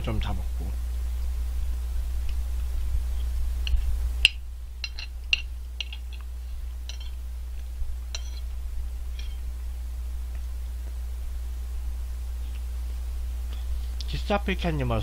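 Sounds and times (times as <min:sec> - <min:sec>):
steady low hum: 0:00.0 - 0:15.0
metal spoon clinking on plate: 0:04.2 - 0:06.2, 0:06.8 - 0:07.2, 0:08.1 - 0:08.5.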